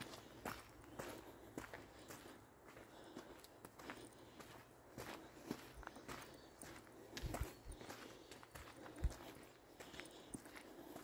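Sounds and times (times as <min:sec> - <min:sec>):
footsteps on dirt trail: 0:00.0 - 0:11.0.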